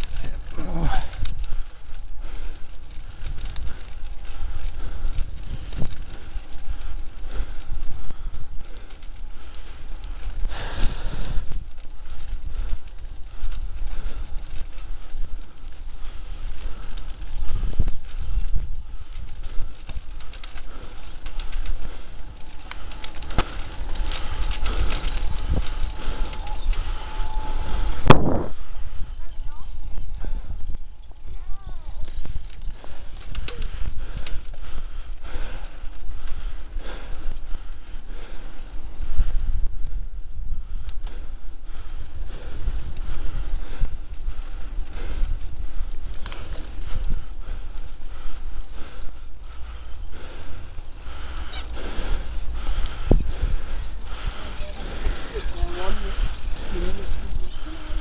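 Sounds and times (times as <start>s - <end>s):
bicycle rumbling over rough path: 0.0s - 58.0s.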